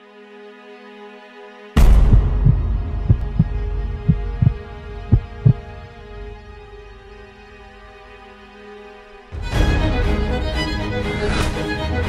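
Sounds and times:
deep cinematic hit: 1.8 - 5.6
heartbeat thumps: 1.8 - 5.7.

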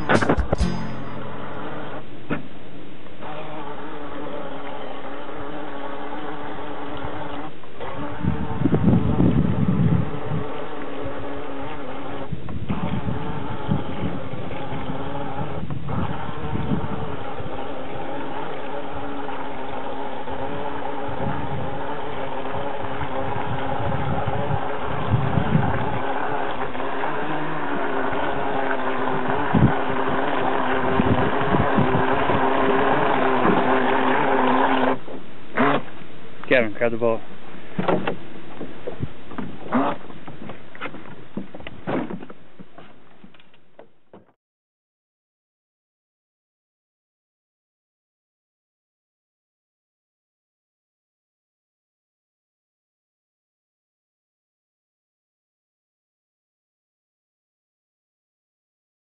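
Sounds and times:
electric boat motor whining: 0.0 - 2.2, 3.1 - 36.2.

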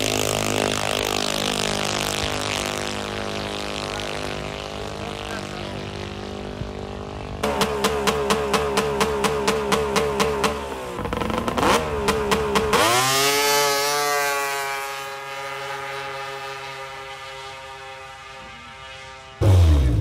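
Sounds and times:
snowmobile engine revving: 0.0 - 20.0
steady engine drone: 0.0 - 20.0.

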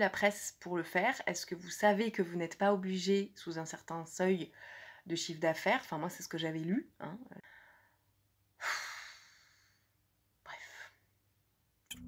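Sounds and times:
woman speaking: 0.0 - 7.4
woman sighing: 8.6 - 9.8.

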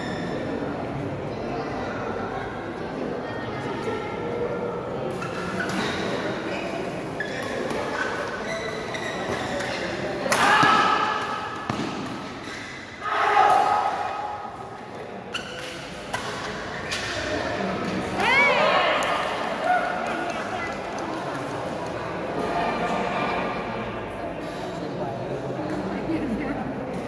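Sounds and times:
murmur of spectators' voices: 0.0 - 27.0
racket hitting shuttlecock: 10.3 - 12.9, 15.4 - 17.2
loud shouts: 13.0 - 14.4.

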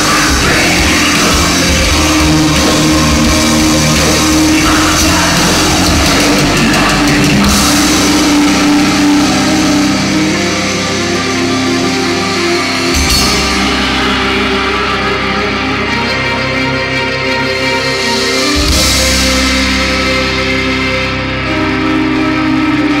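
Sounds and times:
drum kit and cymbals: 0.0 - 21.0
electric guitar: 0.0 - 23.0
keyboards: 0.0 - 23.0.

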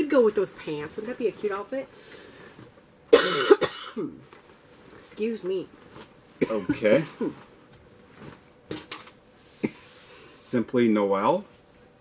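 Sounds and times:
woman coughing: 3.1 - 4.2, 6.4 - 7.4.

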